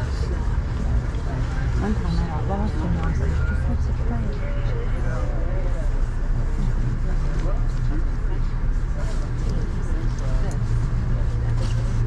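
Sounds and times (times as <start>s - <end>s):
passengers talking indistinctly: 0.0s - 12.0s
train low hum: 0.0s - 12.0s.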